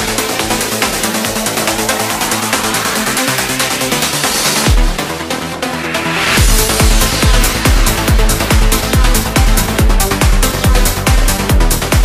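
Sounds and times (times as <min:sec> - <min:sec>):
trance music: 0:00.0 - 0:12.0
kick drum: 0:04.7 - 0:05.0, 0:06.4 - 0:12.0
bright hi-hats: 0:06.0 - 0:12.0.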